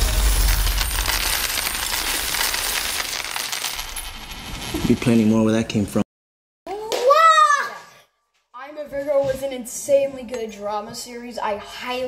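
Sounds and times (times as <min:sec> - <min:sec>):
coins clattering onto counter: 0:00.0 - 0:04.7.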